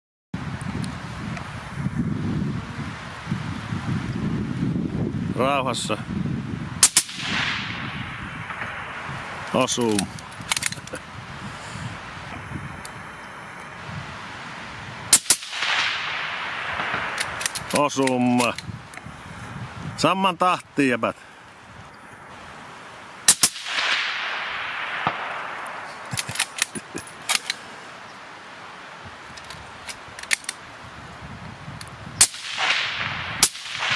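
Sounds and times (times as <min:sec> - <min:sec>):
gunshot echo: 0:06.8 - 0:10.1, 0:15.1 - 0:17.9, 0:23.3 - 0:26.1, 0:32.2 - 0:33.9
suppressed rifle shots: 0:06.8 - 0:10.9, 0:15.1 - 0:18.5, 0:23.3 - 0:26.7, 0:32.2 - 0:33.9
rifle bolt metallic clicks: 0:09.8 - 0:11.0, 0:16.7 - 0:19.0, 0:23.3 - 0:27.6, 0:29.3 - 0:30.6.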